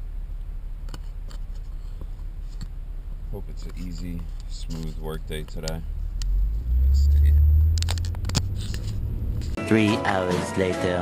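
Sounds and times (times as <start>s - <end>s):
engine and road noise rumble: 0.0s - 9.6s
sharp clicks: 5.4s - 6.3s.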